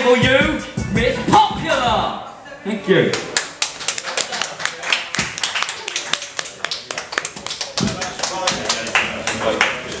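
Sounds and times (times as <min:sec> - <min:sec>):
audience applauding: 0:03.3 - 0:10.0.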